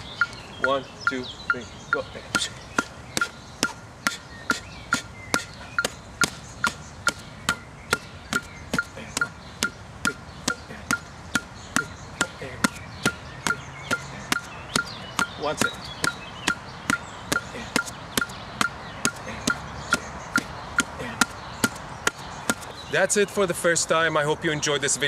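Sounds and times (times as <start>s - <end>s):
metronome clicking: 0.0s - 2.5s, 4.9s - 20.9s.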